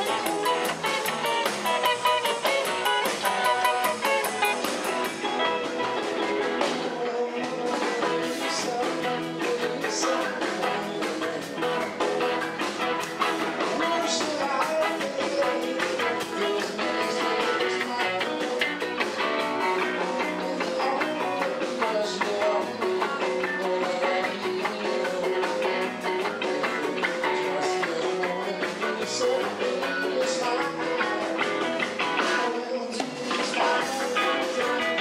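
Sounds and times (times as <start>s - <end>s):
electric guitar: 0.0s - 35.0s
live rock and roll band: 0.0s - 35.0s.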